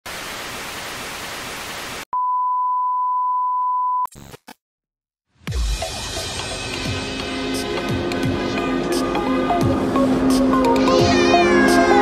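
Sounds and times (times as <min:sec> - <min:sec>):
tv static hiss: 0:00.1 - 0:02.0
steady test-tone beep: 0:02.2 - 0:04.1.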